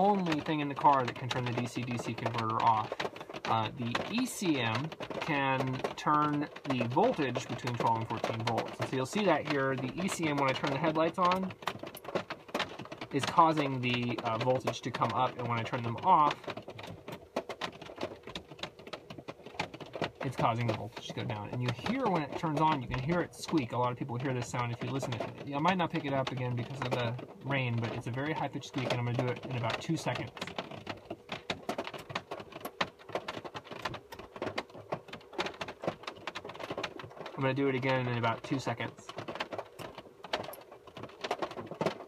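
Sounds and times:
rain pattering: 0:00.0 - 0:42.0.

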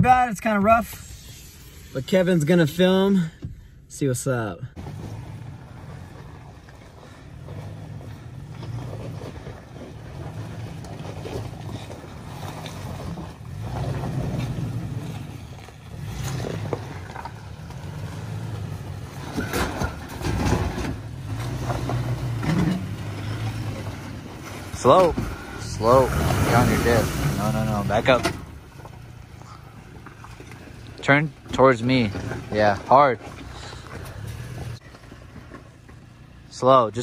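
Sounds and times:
truck engine running at low revs: 0:04.7 - 0:37.0
tires knocking over rocks: 0:04.8 - 0:37.0.

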